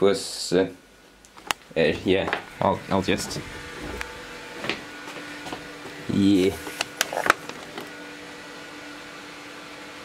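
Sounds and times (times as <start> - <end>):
faint steady hum: 0.0 - 8.9
objects being handled: 2.3 - 8.0.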